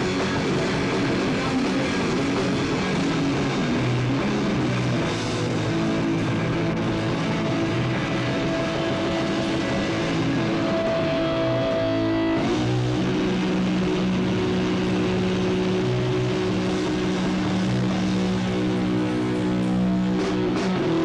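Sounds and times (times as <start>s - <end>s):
distorted electric guitars: 0.0s - 21.0s
drums: 0.0s - 21.0s.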